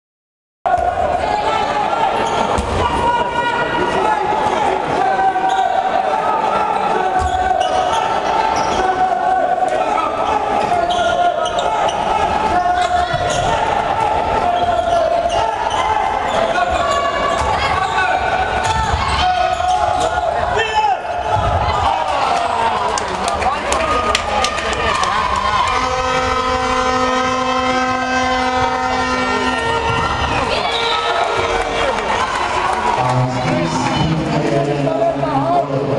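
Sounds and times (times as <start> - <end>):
spectators' voices echoing: 0.7 - 35.9.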